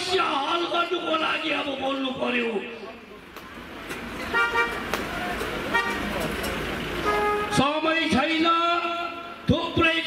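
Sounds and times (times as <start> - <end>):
street traffic: 0.0 - 10.0
vehicle horn toot: 4.3 - 4.8, 5.7 - 6.2, 7.0 - 7.8.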